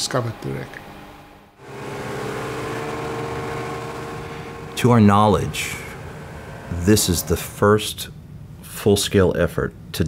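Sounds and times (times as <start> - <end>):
outboard motor running: 1.6 - 7.5.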